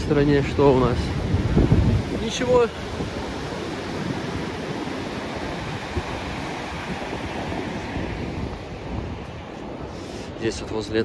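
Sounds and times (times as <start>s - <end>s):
surf breaking onto shore: 0.0s - 11.0s
wind buffeting microphone: 0.0s - 11.0s.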